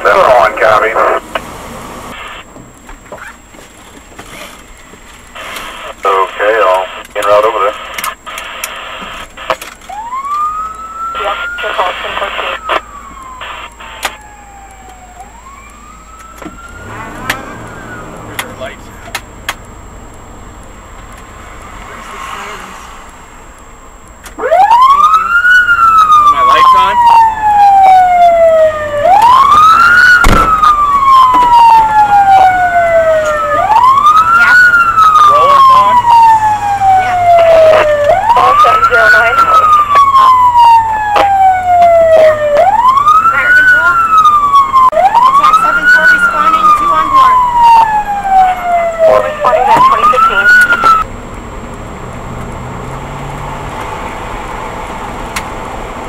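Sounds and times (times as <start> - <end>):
fire siren wailing: 0.0 - 1.4, 8.4 - 19.2, 24.3 - 51.1
two-way radio voice: 0.0 - 1.4, 5.5 - 9.6, 11.1 - 12.8, 18.2 - 19.1, 26.1 - 27.0, 34.2 - 36.2, 36.9 - 40.5, 41.1 - 41.4, 43.2 - 44.0, 45.1 - 47.5, 48.4 - 51.0.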